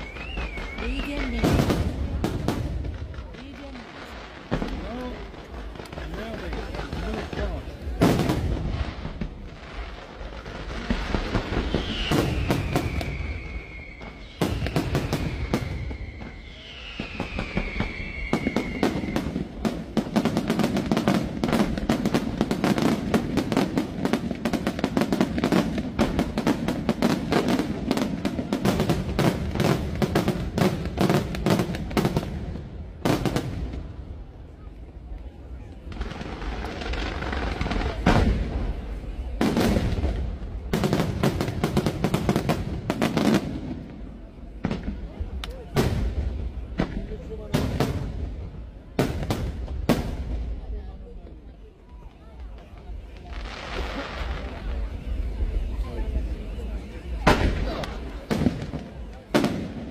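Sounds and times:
falling firework whistle: 0.0s - 2.2s, 10.9s - 20.0s
fireworks bursts and crackling: 0.0s - 59.9s.

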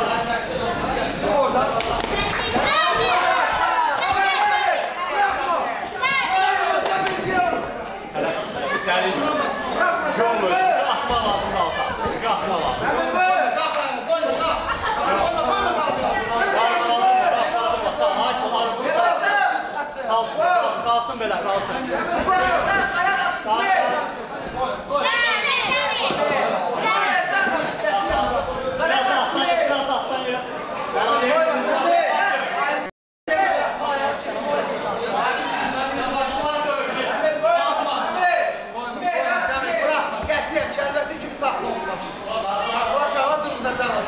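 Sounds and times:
people shouting and yelling: 1.2s - 20.8s, 24.8s - 29.9s
people shouting excitedly: 2.4s - 7.4s.

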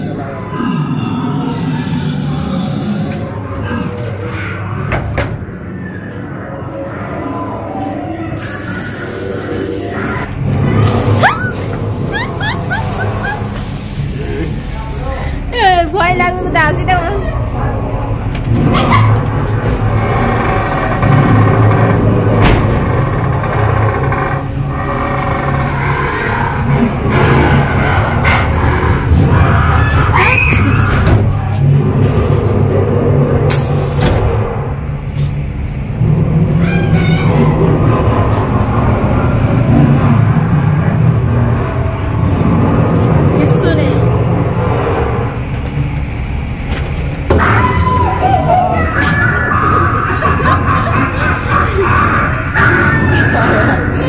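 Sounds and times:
steady low rumble: 5.4s - 30.0s, 31.2s - 47.4s
voices: 47.3s - 54.0s.

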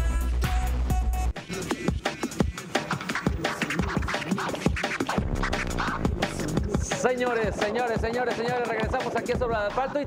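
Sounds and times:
electronic beat: 0.1s - 10.0s
vinyl record scratching: 1.4s - 10.0s.

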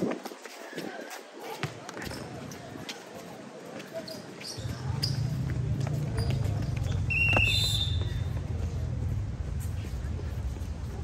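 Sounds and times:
players' voices: 0.1s - 11.0s.

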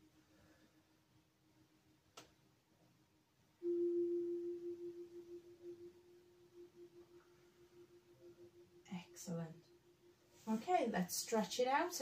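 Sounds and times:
steady ringing tone: 3.6s - 10.5s.

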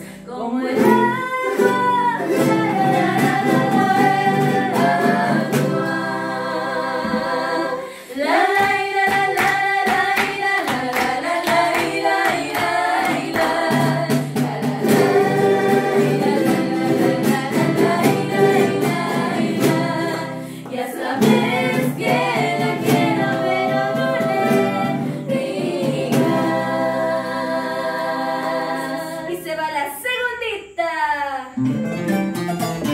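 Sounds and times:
acoustic guitars: 0.0s - 30.0s, 31.5s - 32.9s
women singing folk song: 0.0s - 31.6s
strummed charangos: 0.6s - 29.2s, 31.5s - 32.9s.

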